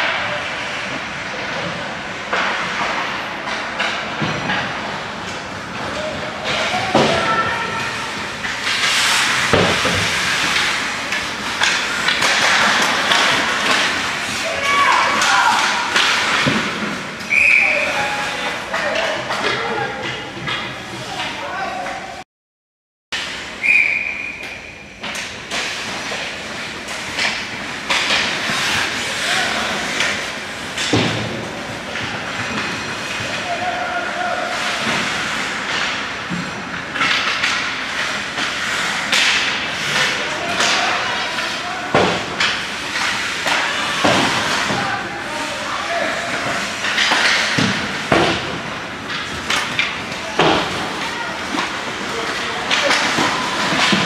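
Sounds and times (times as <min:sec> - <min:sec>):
skate blades on ice: 0:00.0 - 0:21.9, 0:25.1 - 0:54.0
sticks and puck clacking: 0:00.0 - 0:22.2, 0:23.2 - 0:54.0
voices: 0:05.7 - 0:16.5, 0:17.3 - 0:22.2, 0:28.0 - 0:36.0, 0:38.8 - 0:54.0.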